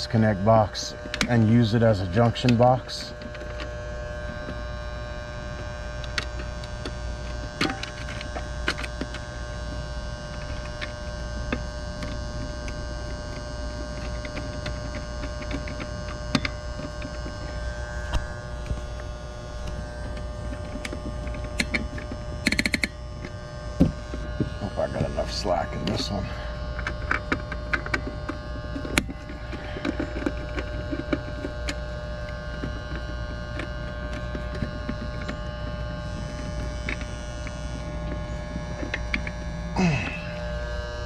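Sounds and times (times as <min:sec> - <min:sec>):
steady electrical hum: 0:00.0 - 0:41.0
sharp clicks in metal box: 0:20.1 - 0:23.0.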